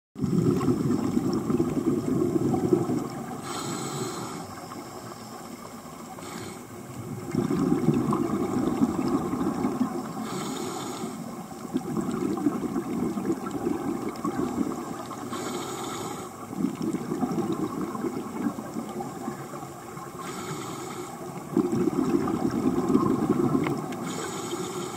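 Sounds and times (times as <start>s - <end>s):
rumble of exhaled bubbles: 0.2s - 20.4s, 21.2s - 24.4s
regulator hiss on inhalation: 3.4s - 5.5s, 6.1s - 6.7s, 10.1s - 11.4s, 14.7s - 16.5s, 20.2s - 21.3s, 24.0s - 24.9s.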